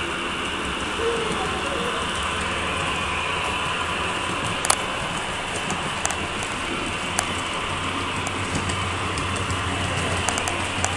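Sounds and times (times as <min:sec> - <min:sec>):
model train whirring on track: 0:00.0 - 0:10.9.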